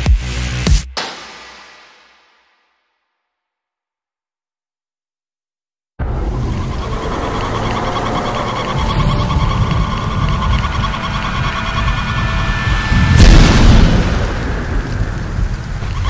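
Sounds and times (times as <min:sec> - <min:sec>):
faint musical drone: 0:06.0 - 0:15.6
thunder-like low rumble: 0:06.0 - 0:16.0
whooshing boom: 0:06.0 - 0:16.0.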